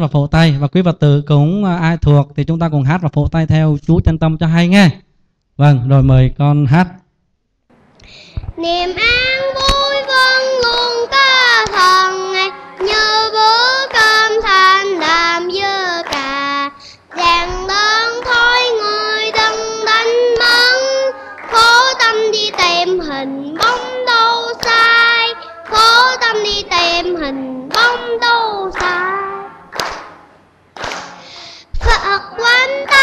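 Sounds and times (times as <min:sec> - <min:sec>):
boy singing into microphone: 0:08.4 - 0:29.6, 0:31.2 - 0:33.0
audience clapping in time: 0:08.9 - 0:33.0.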